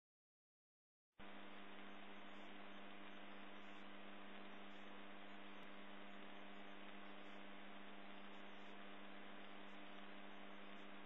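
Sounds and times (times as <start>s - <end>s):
three d printer hum: 1.2s - 11.0s.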